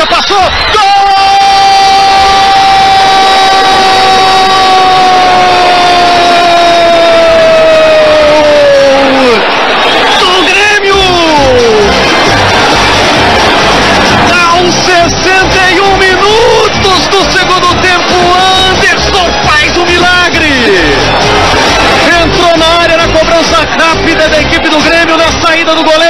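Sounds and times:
crowd noise: 0.0s - 26.0s.

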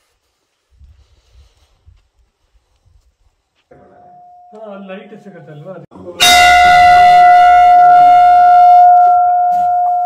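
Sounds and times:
temple bell strike and ring: 3.7s - 4.9s, 6.2s - 10.0s.

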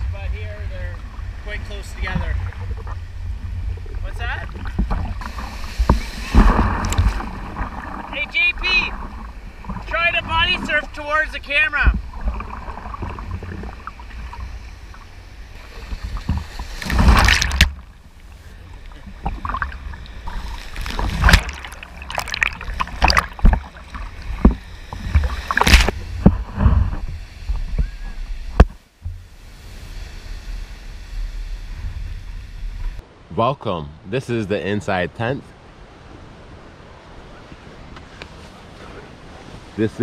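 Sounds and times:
wind on microphone: 0.0s - 10.9s, 11.8s - 33.2s
waves breaking over camera: 0.0s - 33.3s, 35.5s - 40.0s
lake surf splashing: 0.0s - 33.6s, 34.2s - 40.0s.

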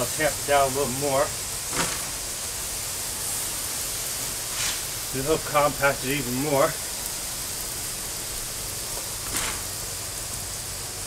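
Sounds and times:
hose spraying water on gravel: 0.0s - 11.0s.

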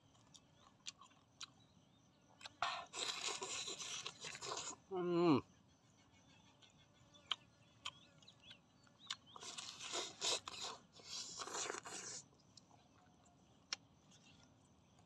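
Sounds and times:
man chewing and tearing meat: 0.1s - 1.6s, 2.4s - 4.8s, 9.0s - 12.7s.

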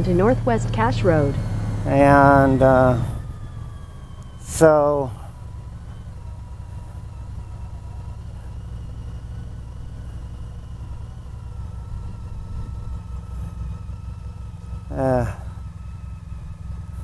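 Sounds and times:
motorcycle engine rumbling: 0.0s - 17.0s.

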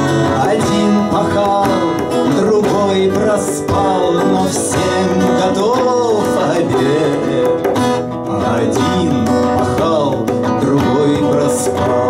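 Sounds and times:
acoustic guitar strummed and picked: 0.0s - 12.0s
man singing: 0.0s - 12.0s.

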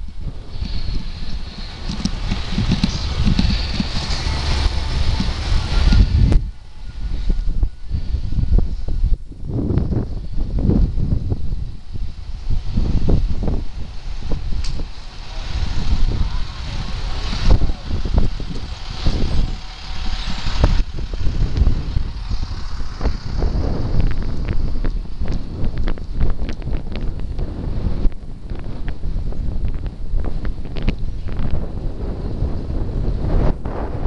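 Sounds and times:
bike and camera rattling clicks: 0.0s - 6.5s, 11.9s - 32.7s
wind buffeting microphone: 0.0s - 34.0s.

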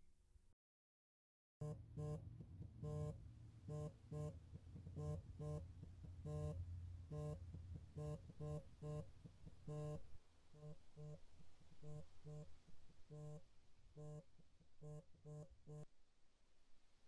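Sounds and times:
mobile phone buzzing on vibrate: 1.6s - 15.9s
low steady hum: 1.6s - 17.0s.

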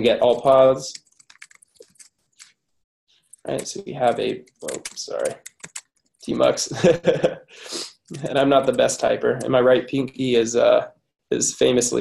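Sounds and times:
computer keyboard keystrokes: 0.9s - 2.6s, 4.5s - 5.9s.

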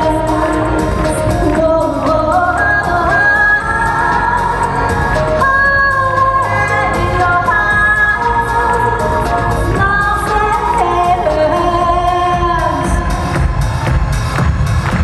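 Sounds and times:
woman singing into a microphone: 0.0s - 13.2s
pop accompaniment with drum beat: 0.0s - 15.0s.

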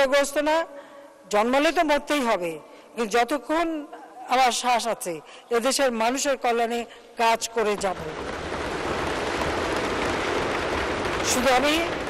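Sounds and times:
people thumping on desks: 8.0s - 12.0s.

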